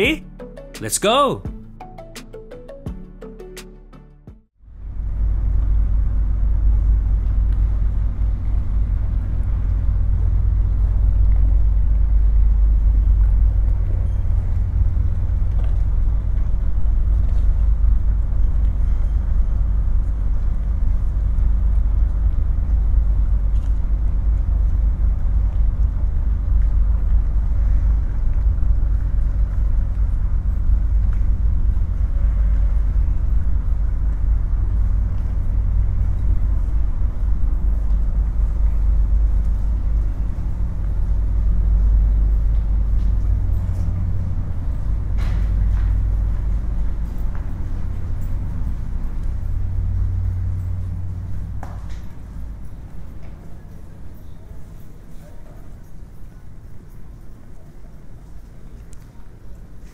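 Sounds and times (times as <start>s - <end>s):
boat engine rumble: 4.7s - 59.9s
traffic hum: 4.9s - 55.4s.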